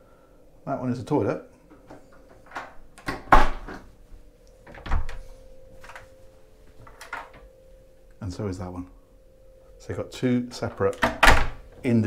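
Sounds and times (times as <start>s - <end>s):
door latch clicks and knocks: 10.9s - 11.6s.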